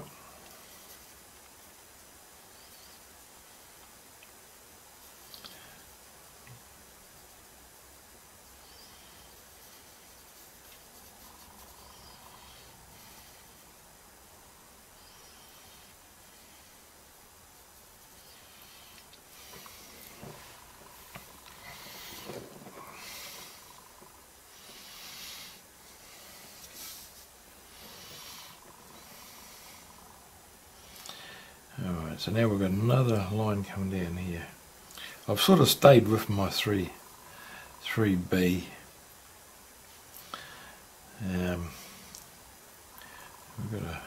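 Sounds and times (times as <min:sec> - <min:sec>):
faint steady hiss: 0:00.0 - 0:44.0.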